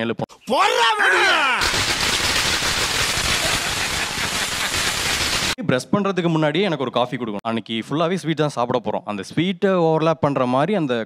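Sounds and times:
firecrackers crackling: 1.6s - 5.6s.

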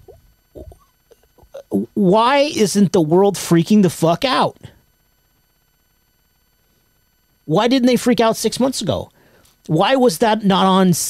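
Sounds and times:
mouth clicks: 0.0s - 1.9s
faint short vocal sounds: 0.0s - 2.0s
man talking: 1.5s - 4.7s, 9.7s - 11.0s.

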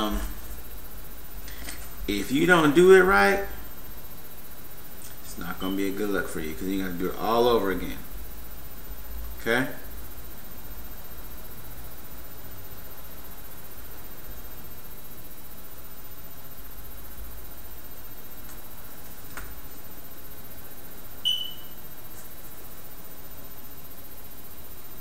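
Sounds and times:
background hiss: 0.0s - 25.0s
high beep: 21.2s - 21.8s.

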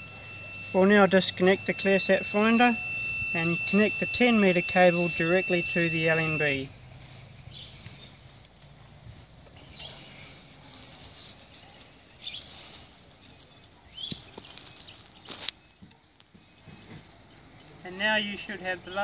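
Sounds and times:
bird chirps: 0.0s - 8.3s, 9.5s - 19.0s.

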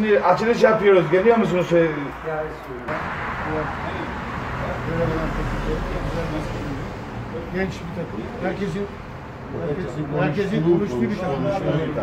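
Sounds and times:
murmur of voices: 4.7s - 12.0s.

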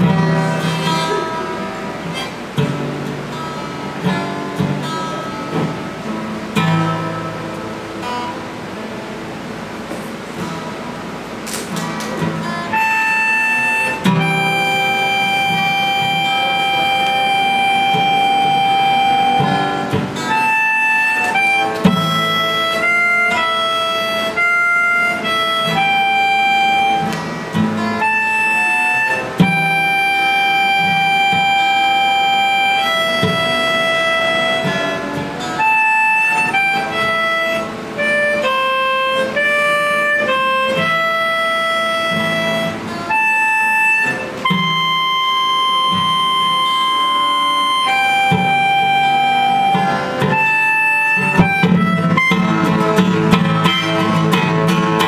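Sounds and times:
harmonica melody: 0.0s - 8.8s, 9.4s - 55.0s
acoustic guitar strumming: 0.0s - 55.0s.

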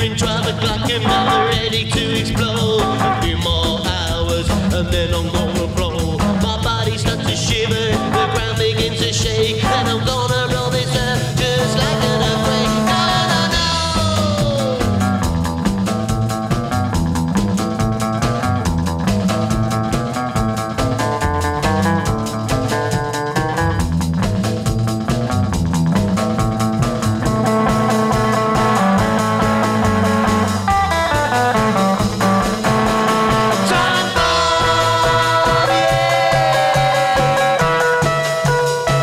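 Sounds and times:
bass line: 0.0s - 39.0s
drums fast beat: 0.0s - 39.0s
lead guitar: 0.0s - 39.0s.

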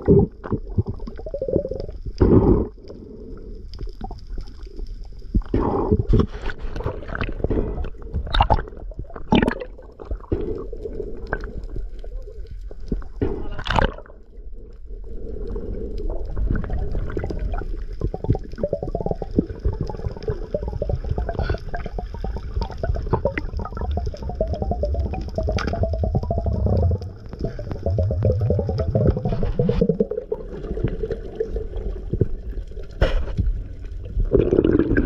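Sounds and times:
dense crackling clicks: 0.0s - 35.0s
water rushing underwater: 0.0s - 35.0s.

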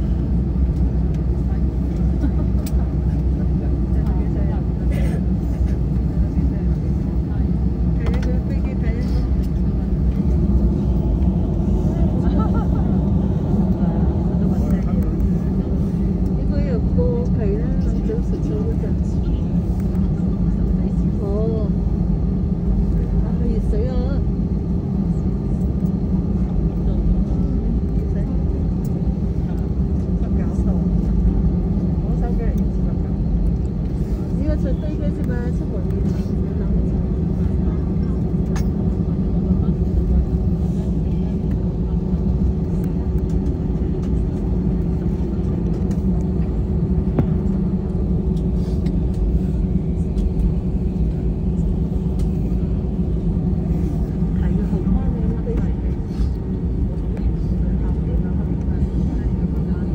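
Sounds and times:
constant cabin hum: 0.0s - 59.9s
jet engines rumbling: 0.0s - 59.9s.

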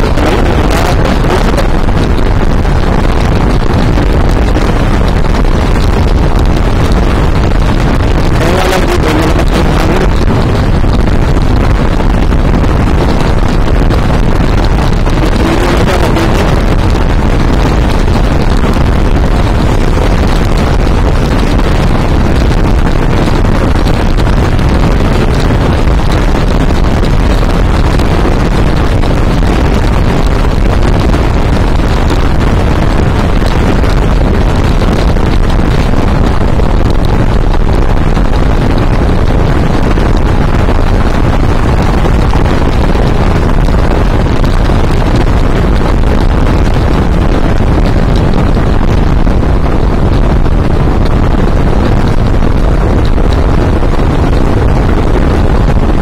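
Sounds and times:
motorcycle riding at road speed: 0.0s - 56.0s
wind noise on microphone: 0.0s - 56.0s.

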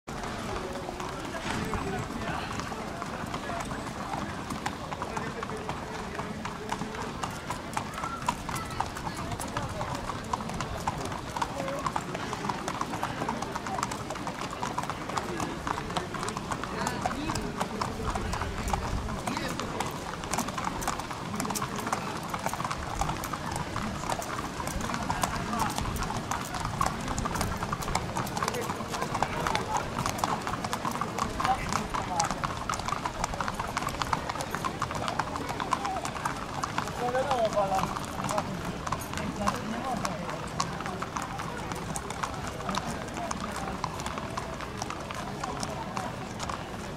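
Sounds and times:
hooves clip-clopping on pavement: 0.1s - 46.9s
murmur of people talking: 0.1s - 46.9s.

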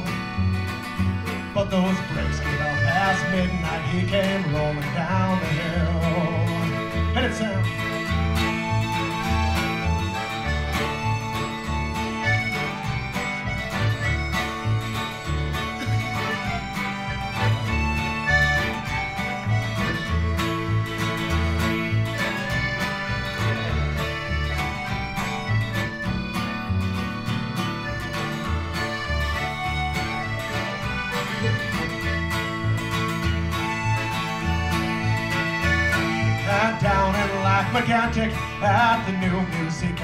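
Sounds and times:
bass line: 0.0s - 40.0s
guitar and plucked strings: 0.0s - 40.0s.

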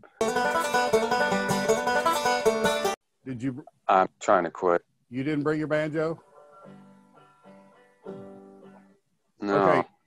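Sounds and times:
banjo picking: 0.0s - 3.0s, 5.2s - 9.8s.

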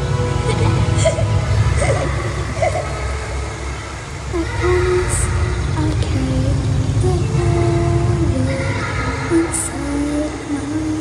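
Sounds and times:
deep steady rumble: 0.0s - 11.0s.

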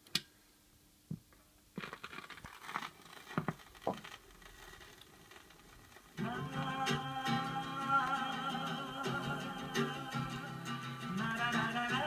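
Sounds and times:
vinyl crackle and pops: 1.0s - 12.0s
vinyl surface noise: 1.1s - 12.0s.

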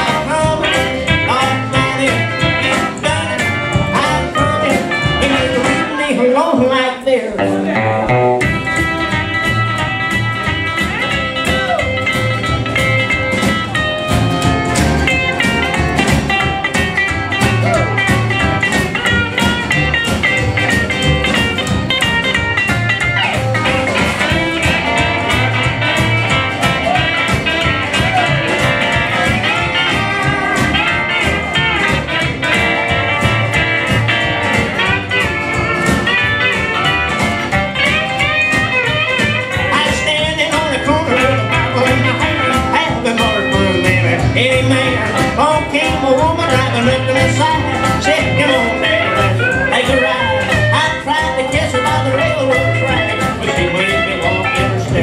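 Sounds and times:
live country band instrumental: 0.0s - 55.0s.

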